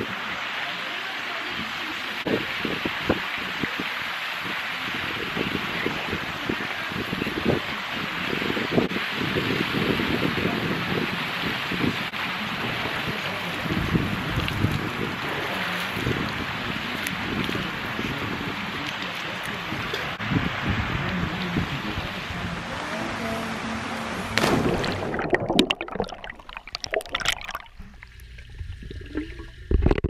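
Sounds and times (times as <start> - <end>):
fountain water splashing: 0.0 - 30.0
wind on microphone: 2.2 - 26.0.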